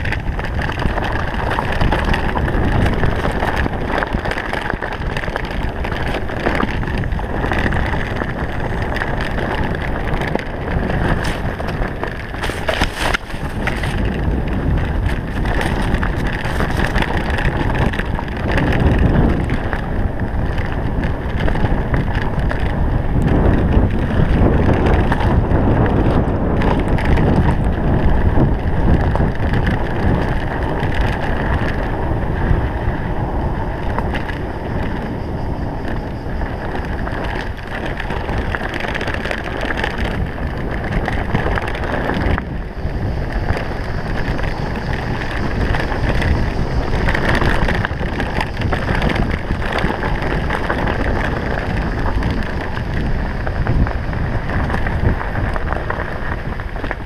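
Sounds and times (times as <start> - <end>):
bike rattling and knocking: 0.0 - 57.0
wind on microphone: 0.0 - 57.0.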